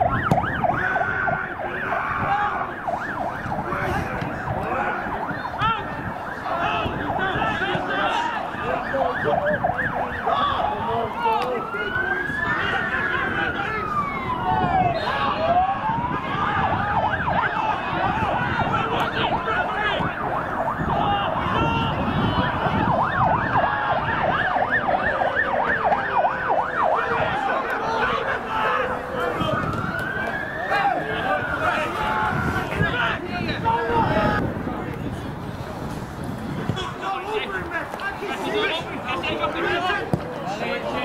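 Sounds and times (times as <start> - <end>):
crowd voices: 0.0 - 41.0
emergency vehicle siren: 0.0 - 41.0.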